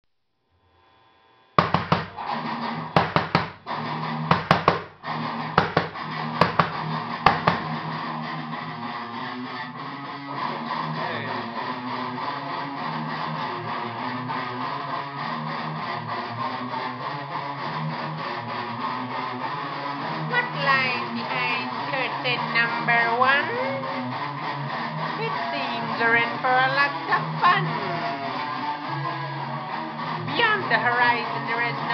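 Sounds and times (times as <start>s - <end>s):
electric guitar strumming chords: 1.6s - 31.9s
steady bass notes: 9.8s - 14.7s, 20.0s - 31.9s.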